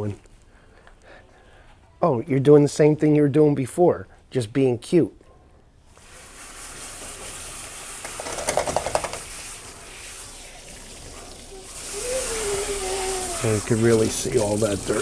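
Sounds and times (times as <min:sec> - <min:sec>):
water spraying from hose: 0:06.0 - 0:15.0.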